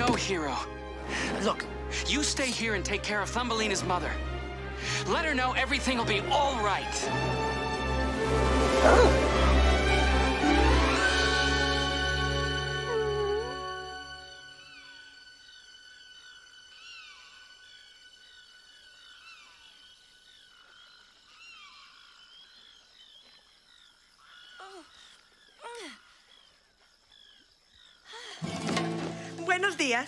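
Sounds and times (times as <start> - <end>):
frogs chirping: 0.0 - 30.0.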